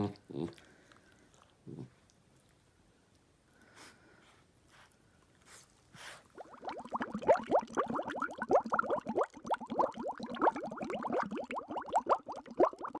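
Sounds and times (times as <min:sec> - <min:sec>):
bubbling water plops: 0:06.4 - 0:13.0.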